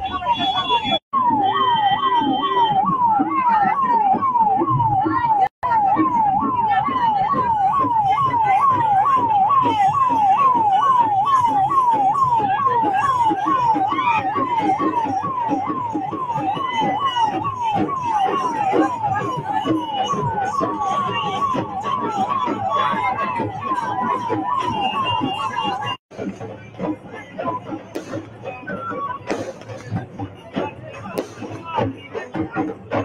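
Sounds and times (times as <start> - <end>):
electronic siren sweeping: 0.0 - 26.4
crowd noise and voices: 0.0 - 33.0.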